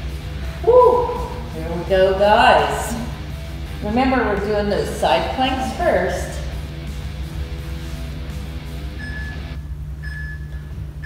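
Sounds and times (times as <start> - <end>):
guitar music over bass: 0.0 - 9.6
timer short high beeps: 9.0 - 10.6.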